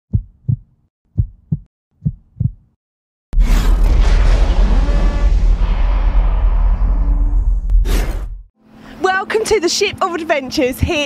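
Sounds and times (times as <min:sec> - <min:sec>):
heartbeat thumps: 0:00.1 - 0:02.8
loud boom with deep rumble: 0:03.4 - 0:08.5.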